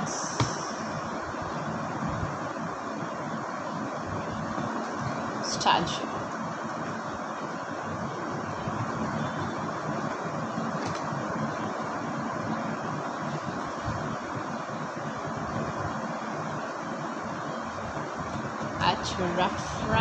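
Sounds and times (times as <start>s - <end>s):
microphone hiss: 0.0s - 20.0s.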